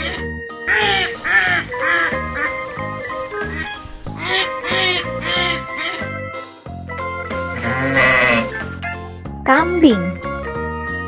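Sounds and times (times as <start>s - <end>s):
background music: 0.0s - 11.0s
goat bleating: 7.6s - 8.6s.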